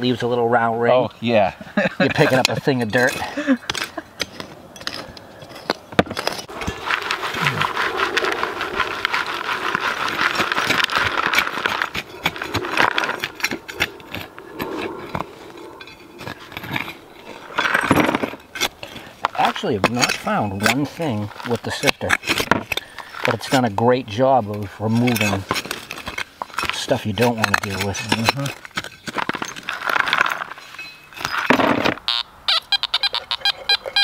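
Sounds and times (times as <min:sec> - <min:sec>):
hand tool scraping soil: 0:02.0 - 0:32.0
soil rustling through sifting screen: 0:04.9 - 0:13.8.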